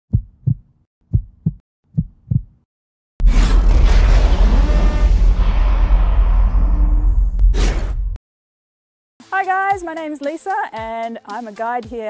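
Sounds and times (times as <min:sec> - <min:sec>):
heartbeat thumps: 0:00.1 - 0:02.6.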